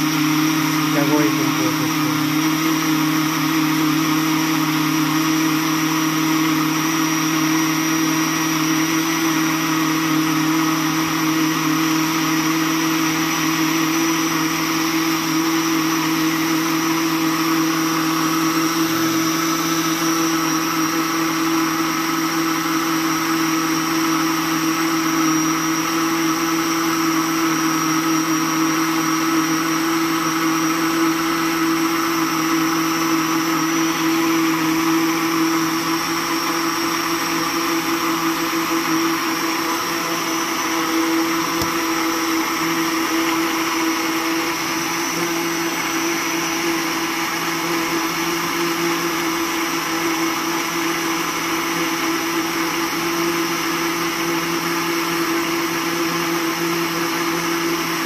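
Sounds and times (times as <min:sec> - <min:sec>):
blender motor whining: 0:00.0 - 0:58.0.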